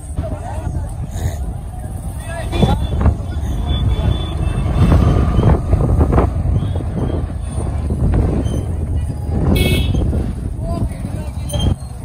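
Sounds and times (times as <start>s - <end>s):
indistinct voices: 0.0s - 12.0s
motorcycle engines rumbling: 0.0s - 12.0s
wind on microphone: 0.0s - 12.0s.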